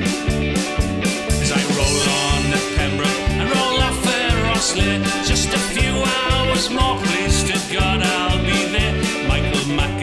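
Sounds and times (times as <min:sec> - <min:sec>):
drums steady beat: 0:00.0 - 0:10.0.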